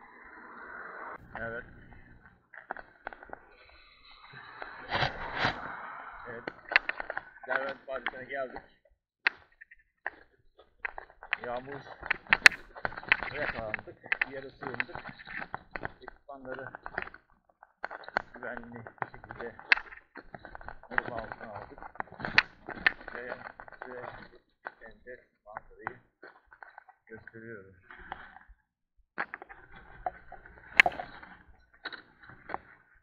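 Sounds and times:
person talking: 1.2 - 8.8, 11.2 - 17.0, 18.3 - 19.7, 20.8 - 26.0, 27.1 - 27.8
sharp clicks and knocks: 9.3 - 27.3, 29.2 - 32.8.

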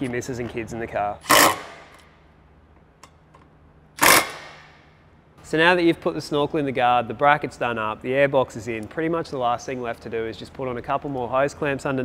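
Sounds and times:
cordless drill driving bolt: 1.2 - 2.0, 4.0 - 4.7.

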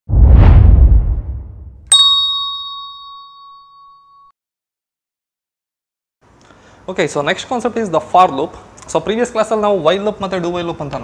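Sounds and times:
bright bell-like chime: 1.9 - 4.3.

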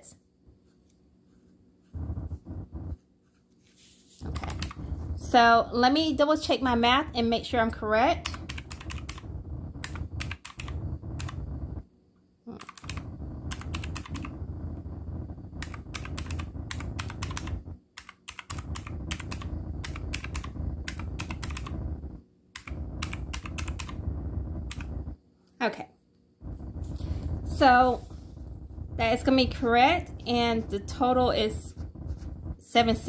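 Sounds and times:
calculator keys clicking: 4.3 - 4.8, 8.2 - 11.4, 12.6 - 14.3, 15.6 - 21.8, 22.6 - 24.0, 24.7 - 24.9.

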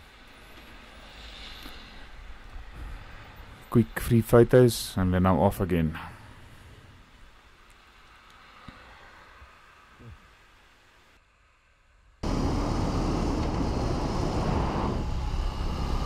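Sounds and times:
motorcycle engine drone: 12.2 - 16.0
wind rush: 12.2 - 16.0.

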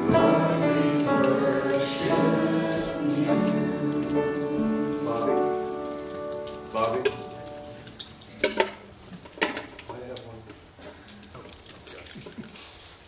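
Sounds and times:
congregation singing a hymn: 0.0 - 7.8.

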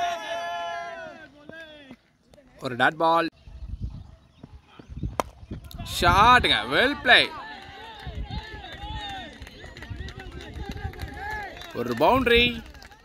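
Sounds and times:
loud shouts: 0.0 - 2.0, 5.8 - 9.7
voices calling out: 0.0 - 3.4, 4.2 - 13.0
cricket bat striking ball: 5.1 - 5.4.

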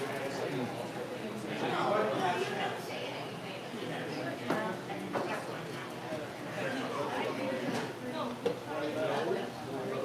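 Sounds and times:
background chatter of people: 0.0 - 10.0.

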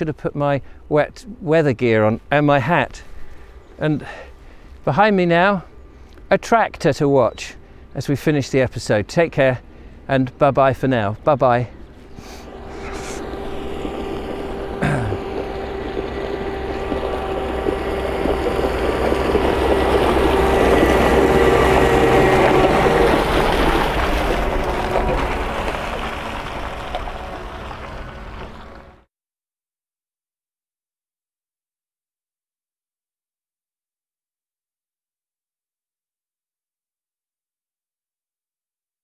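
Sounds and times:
tractor engine running: 9.4 - 29.1
tyres on gravel: 11.0 - 29.0.

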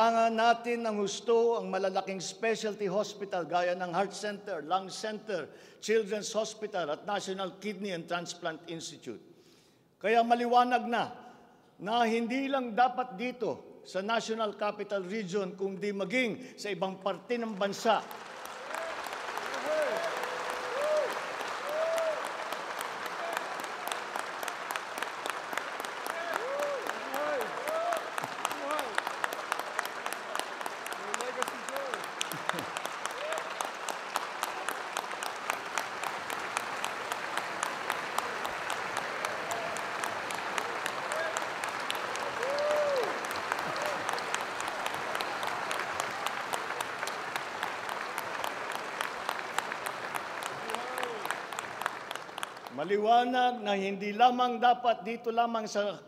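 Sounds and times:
large audience applauding: 17.5 - 53.0.

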